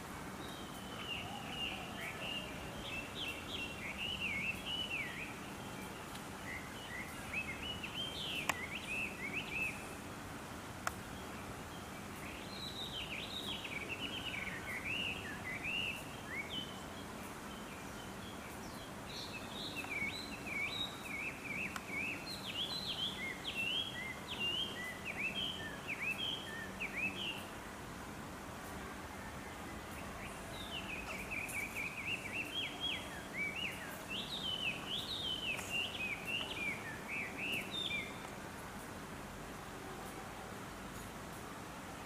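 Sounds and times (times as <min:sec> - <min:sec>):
faint steady hum: 0:00.0 - 0:42.0
songbird chirping: 0:00.0 - 0:42.0.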